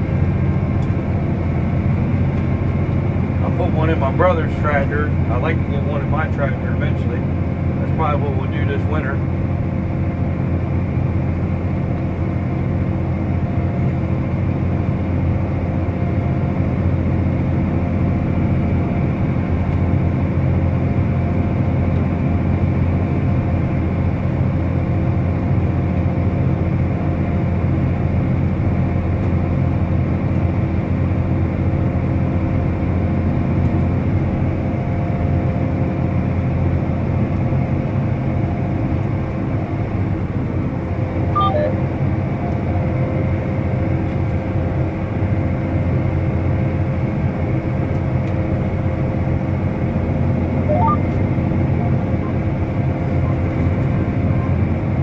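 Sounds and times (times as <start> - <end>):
tractor diesel engine drone: 0.0 - 55.0.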